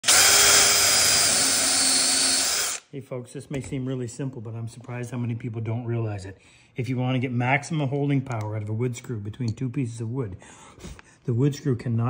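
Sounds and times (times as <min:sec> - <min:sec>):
cordless drill boring into wood: 0:00.0 - 0:02.9.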